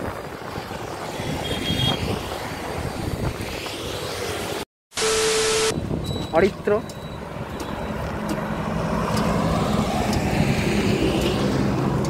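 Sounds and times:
static hiss with beep: 5.0s - 6.3s.

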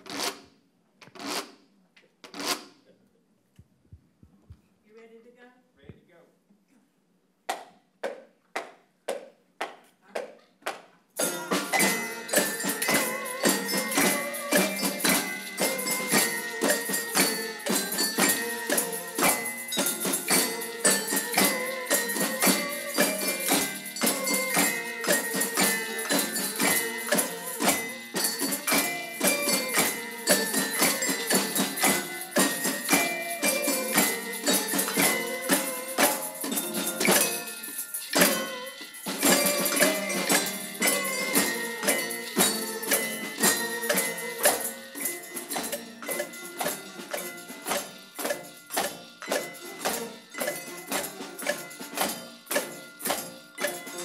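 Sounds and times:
band playing a tune: 11.2s - 54.0s.

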